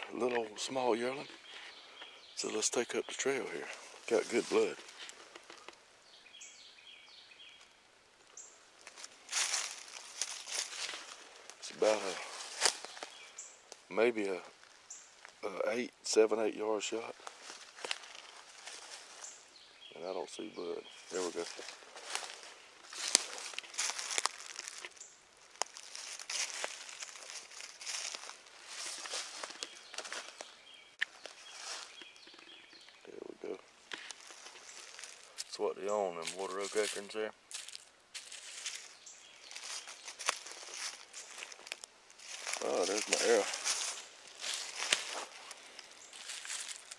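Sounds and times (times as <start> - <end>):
footsteps in dry leaves: 3.3 - 5.6, 8.8 - 13.6, 17.1 - 32.6, 33.9 - 35.6, 36.2 - 46.9
twigs snapping: 4.8 - 5.8, 8.8 - 11.6, 12.3 - 13.9, 17.2 - 19.3, 21.1 - 33.0, 33.8 - 35.5, 37.5 - 46.9.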